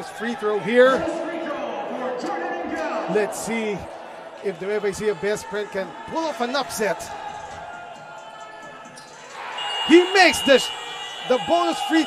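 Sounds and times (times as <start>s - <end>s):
people shouting from benches: 7.1s - 12.0s.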